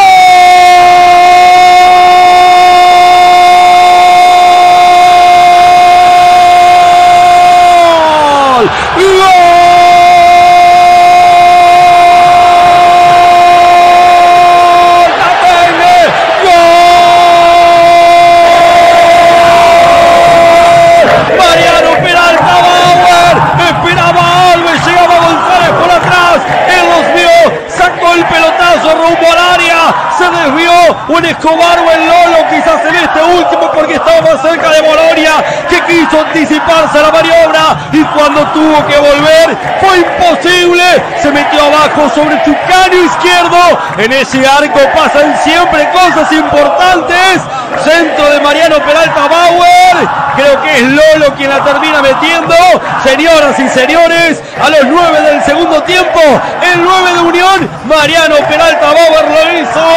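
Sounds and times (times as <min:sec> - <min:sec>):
announcer screaming goal: 0:00.0 - 0:59.9.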